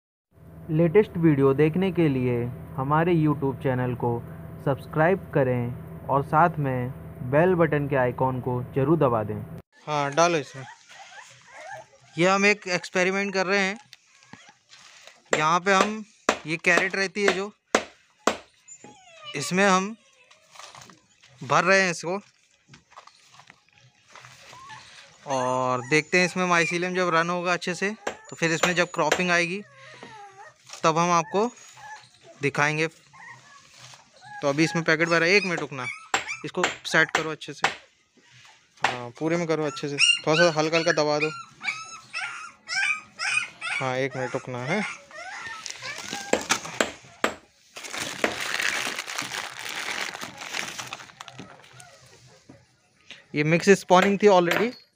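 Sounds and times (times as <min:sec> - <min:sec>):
straw rustling in plastic crate: 0:14.0 - 0:15.3, 0:20.4 - 0:25.3, 0:45.5 - 0:46.8, 0:47.6 - 0:52.5
person speaking: 0:15.4 - 0:17.5.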